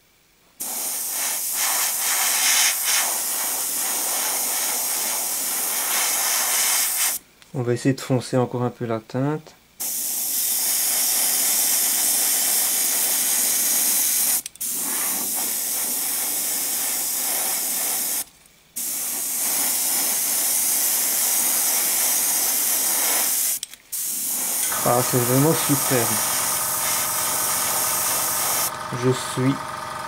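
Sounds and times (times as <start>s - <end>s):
airbrush spraying hiss: 0.6s - 7.2s, 9.8s - 28.7s.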